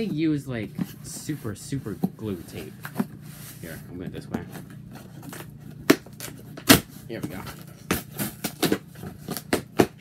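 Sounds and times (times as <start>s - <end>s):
cardboard box tearing: 4.9s - 10.0s.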